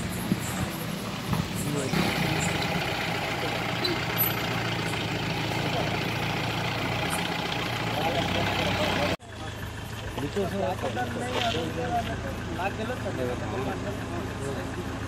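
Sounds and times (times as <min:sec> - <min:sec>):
vehicle engine idling: 0:00.0 - 0:15.0
voices talking in background: 0:00.3 - 0:15.0.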